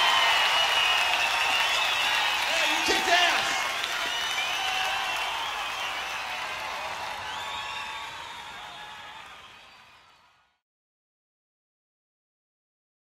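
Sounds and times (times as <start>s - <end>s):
crowd cheering: 0.0s - 10.6s.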